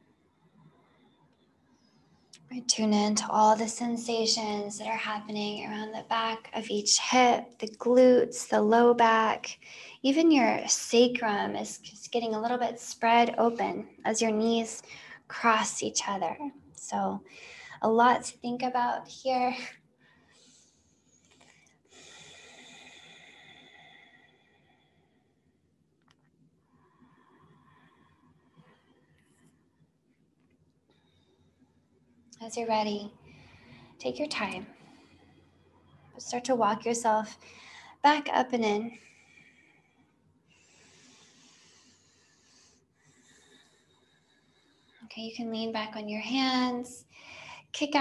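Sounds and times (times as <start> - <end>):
faint soft breathing: 9.6 - 10.0, 14.8 - 15.3, 17.2 - 17.8, 20.0 - 25.6, 26.6 - 29.9, 30.9 - 31.9, 33.2 - 34.0, 34.6 - 36.2, 37.3 - 38.1, 38.8 - 45.1, 47.0 - 47.8
woman exhaling slowly: 21.9 - 25.0.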